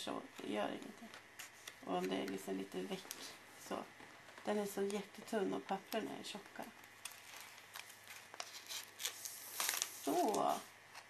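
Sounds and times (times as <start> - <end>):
thick paper rustling: 5.8 - 11.0.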